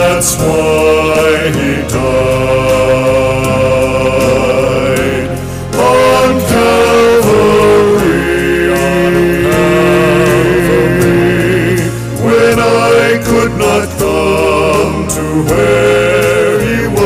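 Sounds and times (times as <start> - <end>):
instrumental accompaniment: 0.0 - 17.0
two men singing a sacred song: 0.0 - 17.0.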